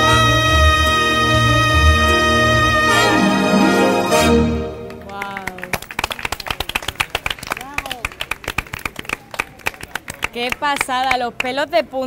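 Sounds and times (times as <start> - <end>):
people clapping: 4.7 - 11.7.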